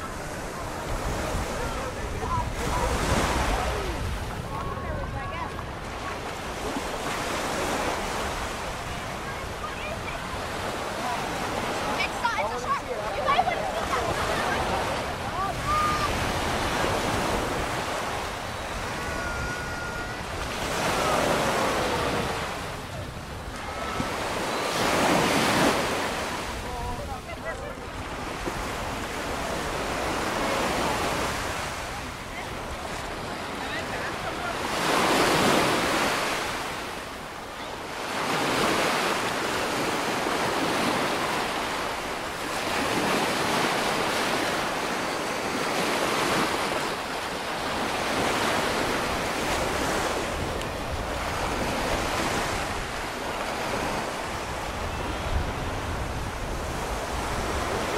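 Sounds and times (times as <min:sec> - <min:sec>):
surf washing up beach: 0:00.0 - 0:57.9.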